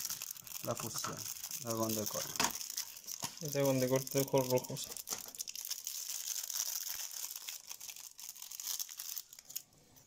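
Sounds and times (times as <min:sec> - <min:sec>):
foil wrapper crinkling: 0:00.0 - 0:10.0.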